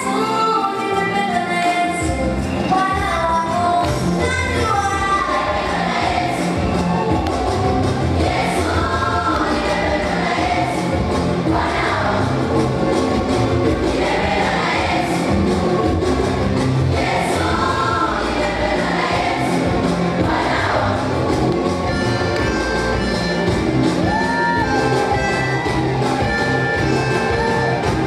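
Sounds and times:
steady backing beat: 2.0 - 28.0
children's choir singing gospel: 2.9 - 28.0.

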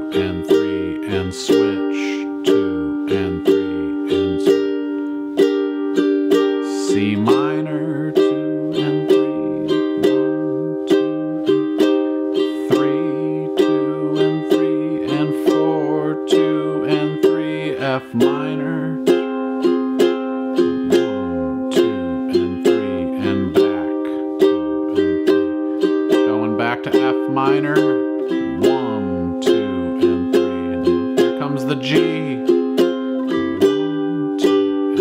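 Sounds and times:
ukulele strumming chords: 0.0 - 35.0.

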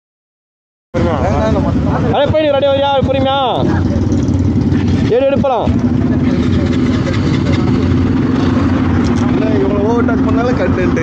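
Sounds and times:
motorcycle engine idling: 1.0 - 11.0.

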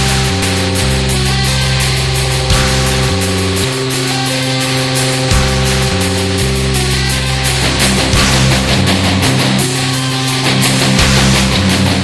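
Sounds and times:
heavy guitar rock music: 0.0 - 12.0.

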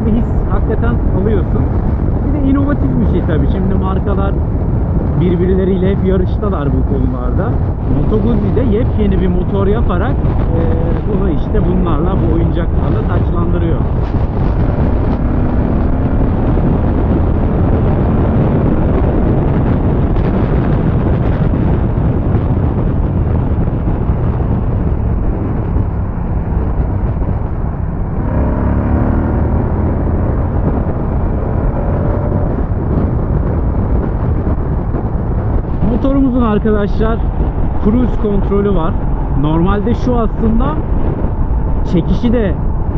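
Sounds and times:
wind rush on microphone: 0.0 - 42.9
motorcycle engine at speed: 7.5 - 42.9.

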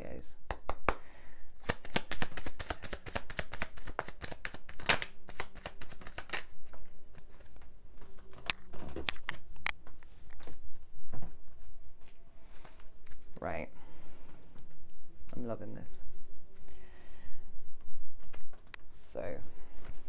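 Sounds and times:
cards being shuffled: 1.6 - 10.6.

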